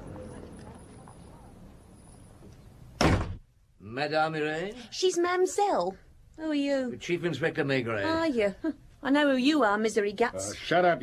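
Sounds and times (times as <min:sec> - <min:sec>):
faint street background: 0:00.0 - 0:11.0
door slamming: 0:03.0 - 0:03.5.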